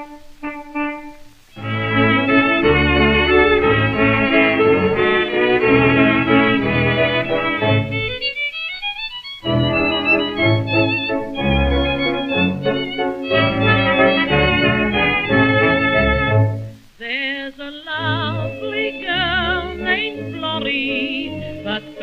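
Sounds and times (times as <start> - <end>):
band playing sustained chords: 0.0 - 8.2, 9.4 - 16.8, 18.1 - 22.0
wavering melody line: 0.0 - 8.4, 9.4 - 16.7.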